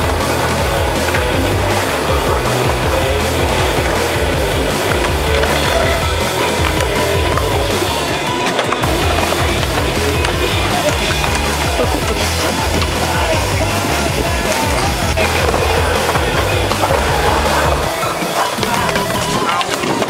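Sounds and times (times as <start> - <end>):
music with steady bass line: 0.0 - 20.0
skateboard wheels rolling on concrete: 0.0 - 20.0.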